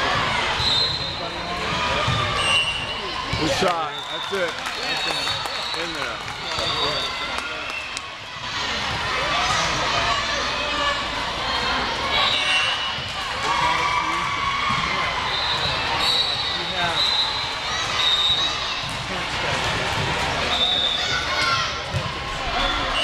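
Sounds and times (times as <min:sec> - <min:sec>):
chatter echoing in a hall: 0:00.0 - 0:23.0.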